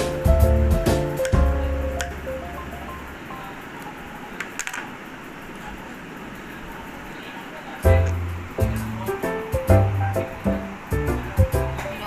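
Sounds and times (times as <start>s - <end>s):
background music with held bass: 0.0s - 3.4s, 7.8s - 12.0s.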